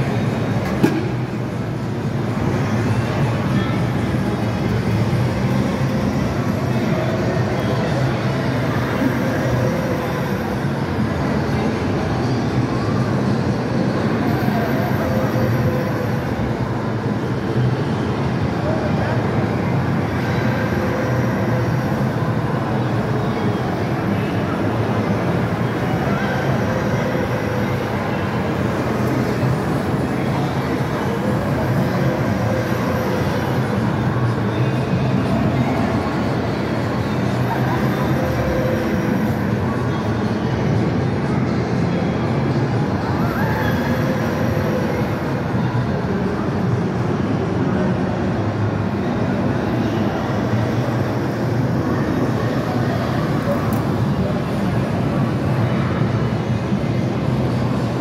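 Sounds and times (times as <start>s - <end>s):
ride car rumbling along track: 0.0s - 58.0s.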